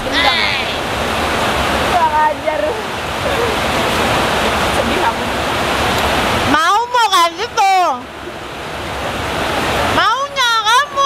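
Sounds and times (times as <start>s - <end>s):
heavy rain hissing: 0.0s - 11.0s.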